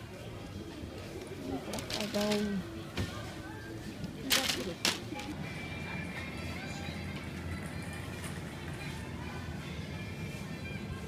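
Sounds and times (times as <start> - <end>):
in-store music: 0.0 - 11.0.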